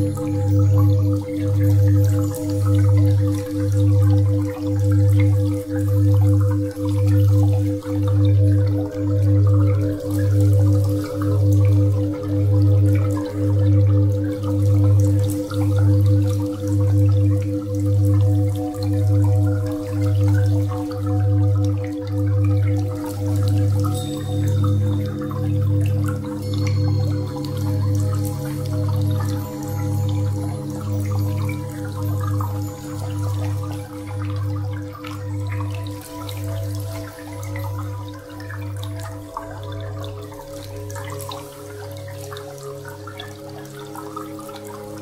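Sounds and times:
drone music with steady tones: 0:00.0 - 0:45.0
faint dripping water: 0:00.0 - 0:45.0.

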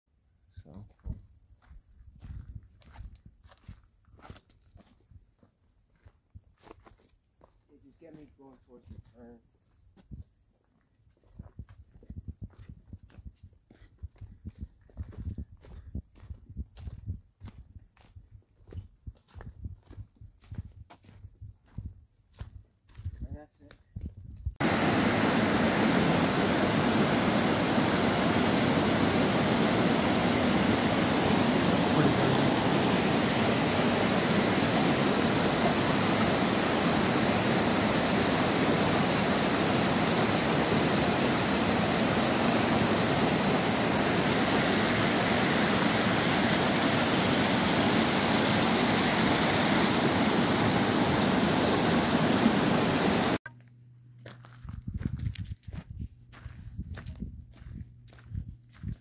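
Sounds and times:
stream cascading over rocks: 0:24.6 - 0:53.4.

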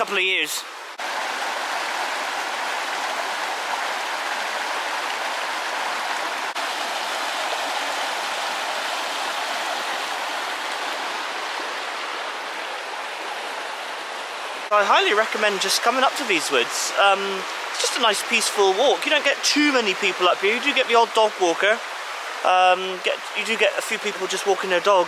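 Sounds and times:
stream rushing over rocks: 0:00.0 - 0:25.0.

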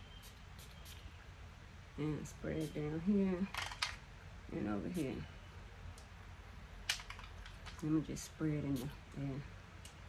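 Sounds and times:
perfume spray spritz: 0:02.6 - 0:02.9.

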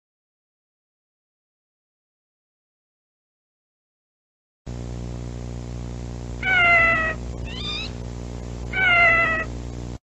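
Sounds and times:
steady low hum: 0:04.7 - 0:10.0
kitten meowing: 0:06.4 - 0:08.0, 0:08.7 - 0:09.5
short rising squeak: 0:07.4 - 0:08.0.

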